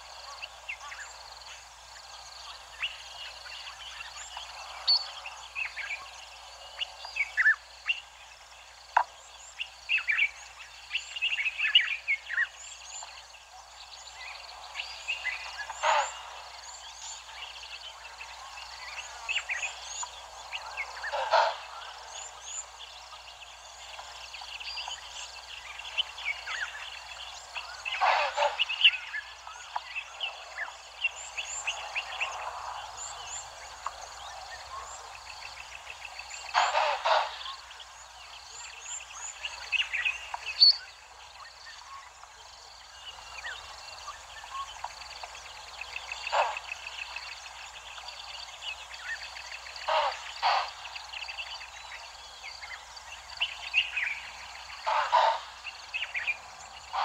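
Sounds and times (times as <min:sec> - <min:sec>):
wild birds chirping: 0:00.0 - 0:57.0.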